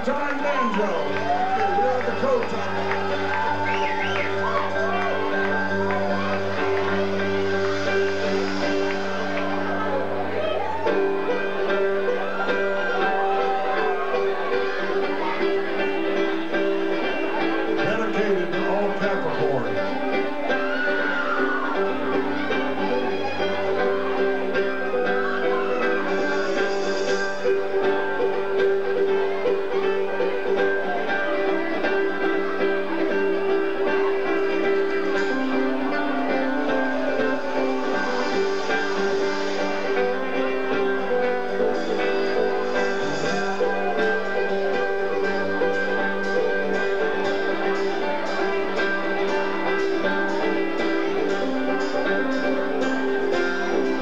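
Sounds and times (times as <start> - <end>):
guitar picking: 0.0 - 54.0.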